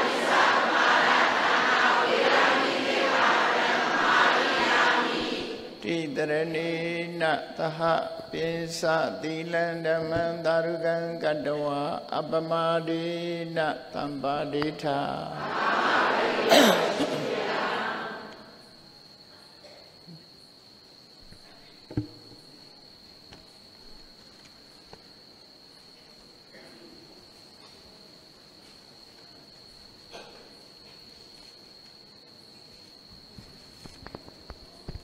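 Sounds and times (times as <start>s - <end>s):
man chanting: 5.8s - 15.4s.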